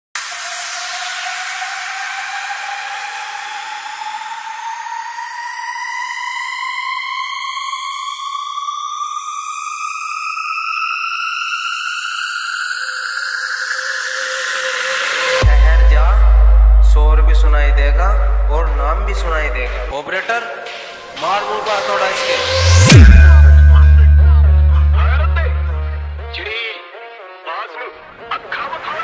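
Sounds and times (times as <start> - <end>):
rising synthesizer tone: 11.3 - 19.9, 21.4 - 26.3
low steady synth tone: 15.4 - 19.9, 22.1 - 26.4.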